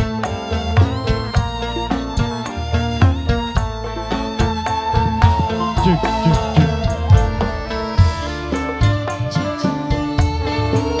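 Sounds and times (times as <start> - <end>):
drums and bass beat: 0.0 - 11.0
guitar: 0.0 - 11.0
live band playing: 0.0 - 11.0
held high note: 3.9 - 9.6.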